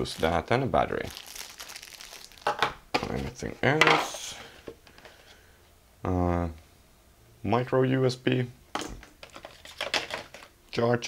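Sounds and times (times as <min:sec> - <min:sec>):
plastic packaging crinkling: 0:00.0 - 0:03.3, 0:09.2 - 0:10.5
sharp plastic crackles: 0:01.0 - 0:02.8.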